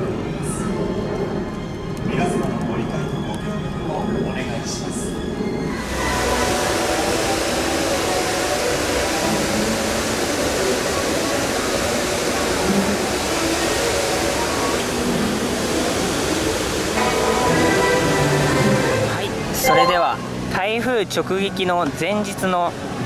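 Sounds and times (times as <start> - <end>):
faint music: 0.0 - 23.0
steady rushing noise: 0.0 - 23.0.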